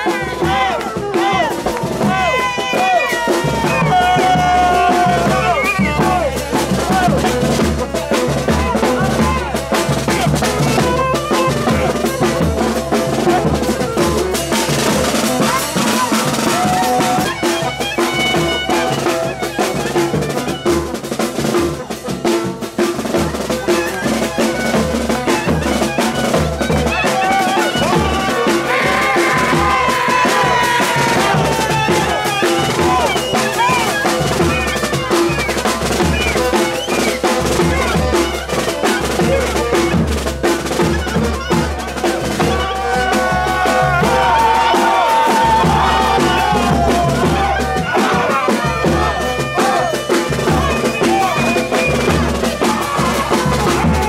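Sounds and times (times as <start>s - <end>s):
bass drums beating: 0.0s - 54.0s
saxophone melody: 0.0s - 54.0s.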